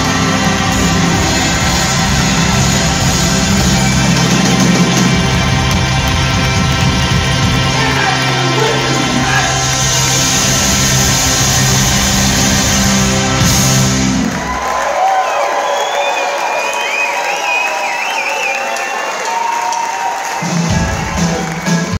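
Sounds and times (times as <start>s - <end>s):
audience cheering: 0.0s - 21.9s
rock band with horns: 0.0s - 21.9s.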